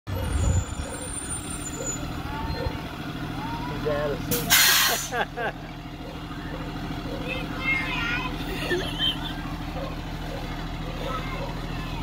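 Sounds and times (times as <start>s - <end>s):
bus diesel engine rumbling: 0.1s - 12.0s.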